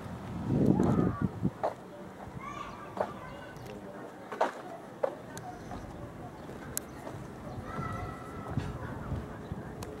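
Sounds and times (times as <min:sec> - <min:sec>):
faint voices: 0:00.6 - 0:10.0.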